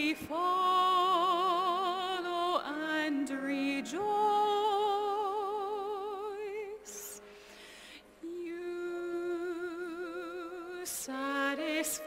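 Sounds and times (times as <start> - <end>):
person singing a hymn: 0.0 - 7.2, 8.2 - 12.0.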